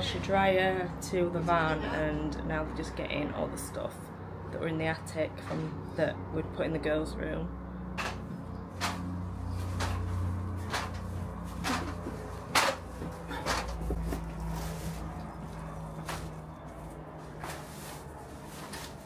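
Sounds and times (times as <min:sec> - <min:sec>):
low steady hum: 0:00.0 - 0:19.0
footsteps on stairs: 0:10.7 - 0:17.6.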